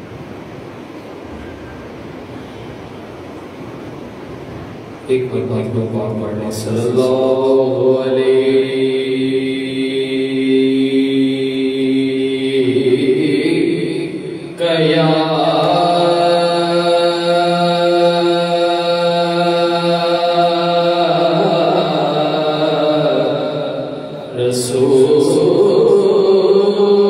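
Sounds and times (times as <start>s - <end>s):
man singing unaccompanied: 5.1s - 27.0s.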